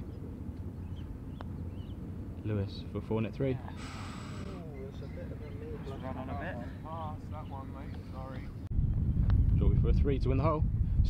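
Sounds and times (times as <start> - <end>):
low outdoor rumble: 0.0 - 11.0
faint bird chirps: 0.8 - 2.0, 3.8 - 6.2.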